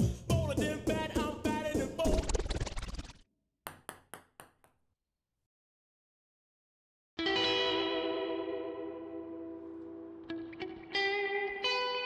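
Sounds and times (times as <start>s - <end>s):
music: 0.0s - 2.4s, 7.2s - 12.0s
ping-pong ball bouncing clicks: 3.7s - 4.7s.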